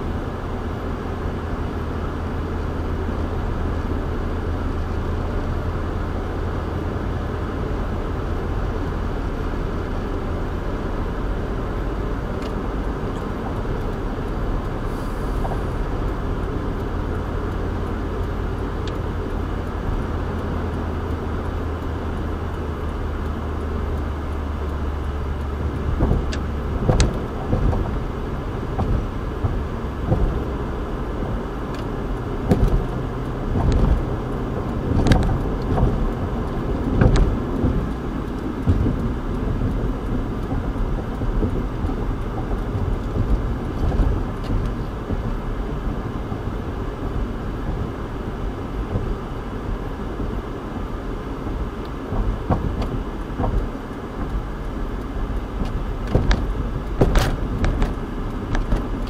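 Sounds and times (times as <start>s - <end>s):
car road rumble: 0.0s - 59.0s
thumps and knocks: 31.3s - 34.1s, 36.9s - 37.9s, 52.1s - 54.3s, 55.6s - 59.0s.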